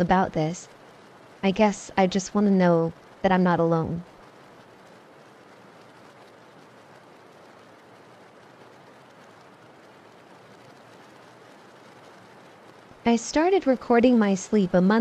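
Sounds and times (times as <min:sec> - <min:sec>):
steady rain hiss: 0:00.0 - 0:15.0.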